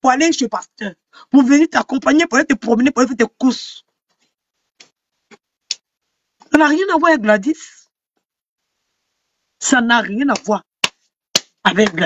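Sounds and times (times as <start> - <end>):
person speaking: 0.0 - 3.9, 5.7 - 7.8, 9.6 - 12.0.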